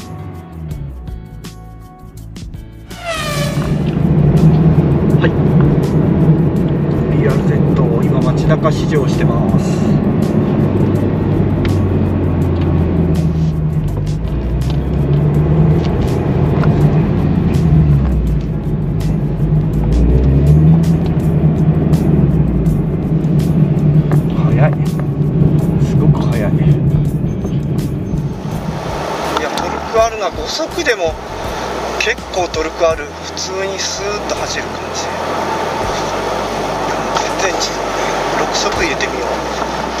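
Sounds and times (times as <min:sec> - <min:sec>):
road noise: 0:00.0 - 0:40.0
car engine in cabin: 0:02.9 - 0:40.0.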